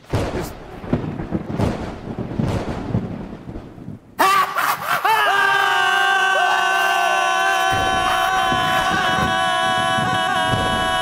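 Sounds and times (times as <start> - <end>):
thunder rumbling: 0.0 - 11.0.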